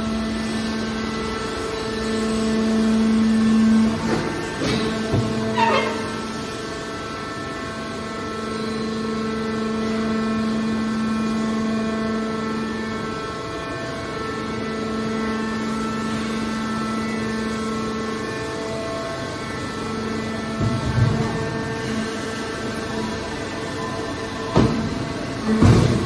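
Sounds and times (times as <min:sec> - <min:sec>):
hydraulic pump motor humming: 0:00.0 - 0:26.0.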